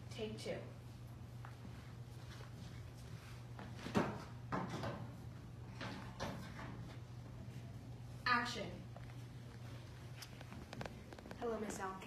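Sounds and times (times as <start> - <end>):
soft rough noise: 0.6 - 12.0.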